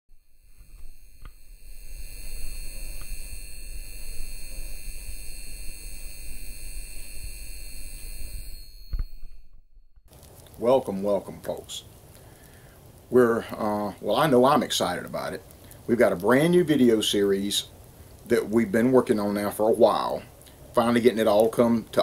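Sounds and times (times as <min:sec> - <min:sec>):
light bulb electrical buzz: 0:00.1 - 0:09.6
high whining tones: 0:00.1 - 0:10.1
crackly low hum: 0:00.1 - 0:22.0.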